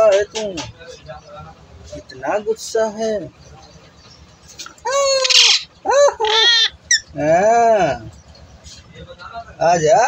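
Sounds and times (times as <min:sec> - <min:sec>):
parakeet calling: 0:04.7 - 0:07.3.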